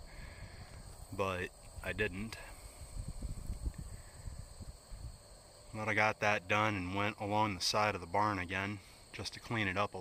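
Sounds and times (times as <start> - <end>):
wind buffeting microphone: 0.0 - 5.3
crickets trilling: 0.0 - 10.0.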